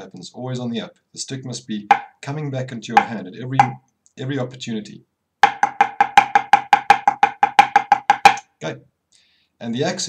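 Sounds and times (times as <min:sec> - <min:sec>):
drumsticks playing paradiddles: 0:01.9 - 0:02.2, 0:02.9 - 0:03.8, 0:05.4 - 0:08.5.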